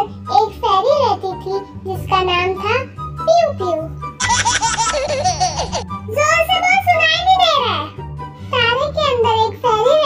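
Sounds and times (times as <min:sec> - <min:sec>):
background music: 0:00.0 - 0:10.0
high-pitched laughter: 0:04.2 - 0:05.8.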